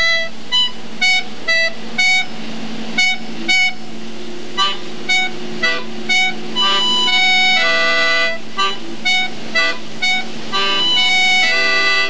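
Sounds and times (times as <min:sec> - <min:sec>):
accordion playing short notes: 0:00.0 - 0:12.0.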